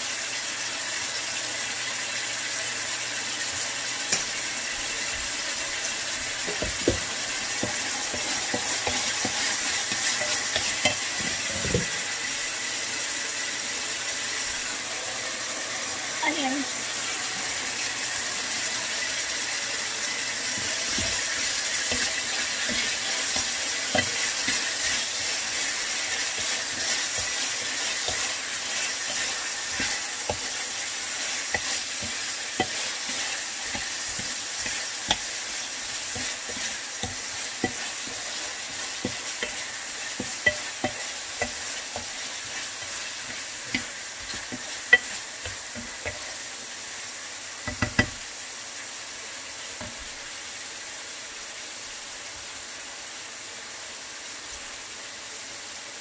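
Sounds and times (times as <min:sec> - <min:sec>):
meat and onions sizzling: 0:00.0 - 0:56.0
wooden spoon scraping pan: 0:06.2 - 0:12.1, 0:20.5 - 0:46.4.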